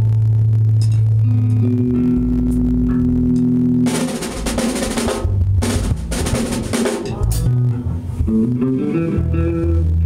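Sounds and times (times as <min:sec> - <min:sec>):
amplified instrument low held notes: 0:00.0 - 0:10.0.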